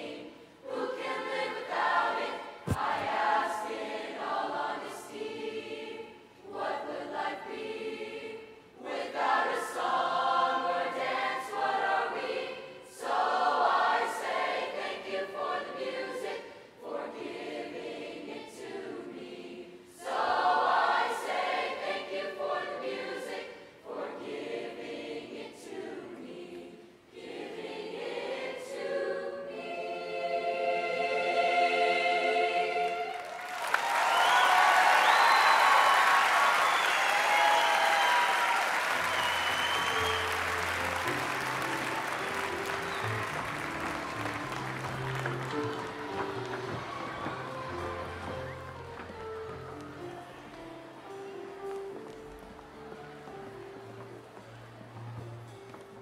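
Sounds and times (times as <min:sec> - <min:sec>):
youth choir singing: 0:00.0 - 0:51.7.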